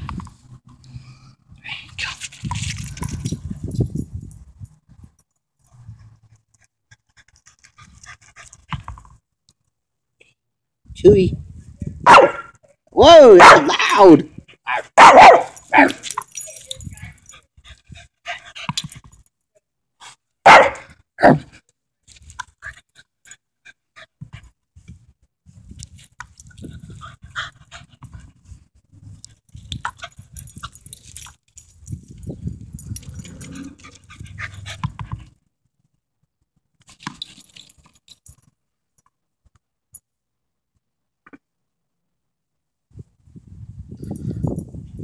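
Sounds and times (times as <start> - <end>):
small dog barking: 12.0 - 12.5, 13.4 - 13.8, 14.7 - 16.0, 20.4 - 21.4.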